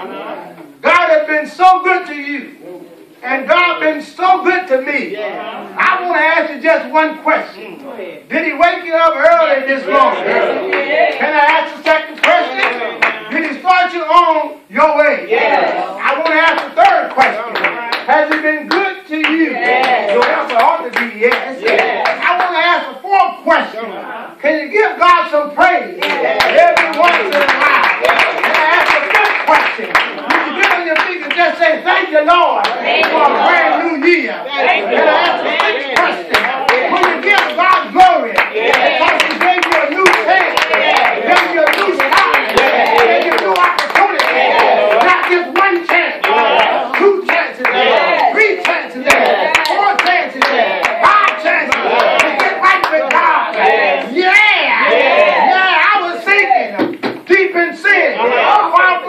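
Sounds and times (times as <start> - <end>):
man calling out: 3.2 - 10.6, 33.2 - 59.0
voices shouting: 9.0 - 13.4, 26.0 - 56.8, 57.8 - 59.0
rapid hand clapping: 11.5 - 13.6, 16.0 - 22.6, 26.0 - 31.6, 35.2 - 53.7.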